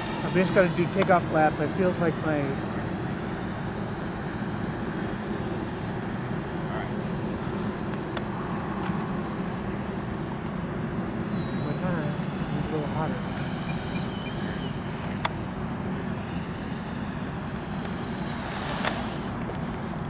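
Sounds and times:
electric ducted-fan motors whining: 0.0s - 20.0s.

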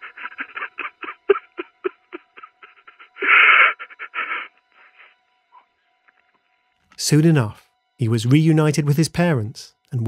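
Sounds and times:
person sobbing over telephone: 0.0s - 6.4s.

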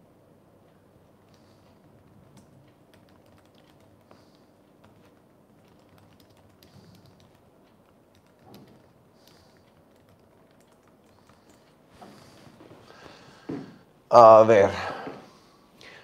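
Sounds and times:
faint typing key clicks: 1.2s - 11.8s.

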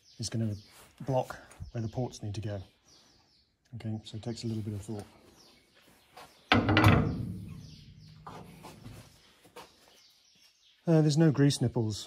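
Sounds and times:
heavy metal clunk with ringing: 6.5s - 8.6s.

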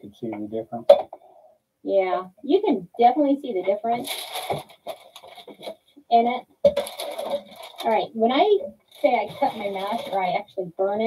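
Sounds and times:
paper rustling and crinkling: 4.0s - 5.8s, 6.7s - 8.0s, 8.9s - 10.4s.

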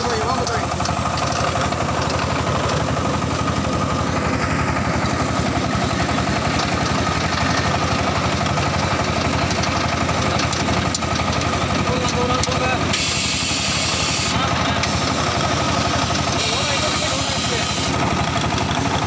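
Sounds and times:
brick machine droning: 0.0s - 19.0s.

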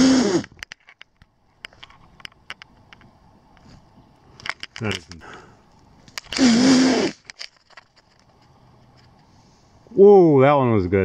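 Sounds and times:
woodland background: 0.0s - 11.0s
camera handling clicks and rustles: 0.5s - 3.7s, 4.4s - 6.4s, 7.2s - 9.3s.

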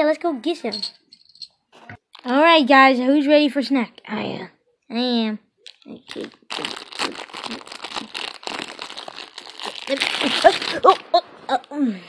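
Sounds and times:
plastic pouch crinkling: 5.7s - 11.8s.

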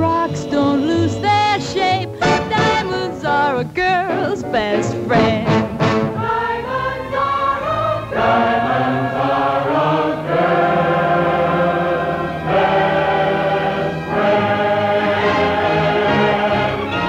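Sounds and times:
orchestral music: 0.0s - 17.0s
choir singing held chords: 4.0s - 17.0s.

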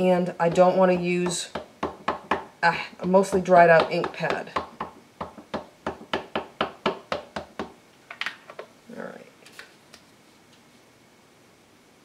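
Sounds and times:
ink pad tapping on rubber stamp: 0.4s - 7.8s.

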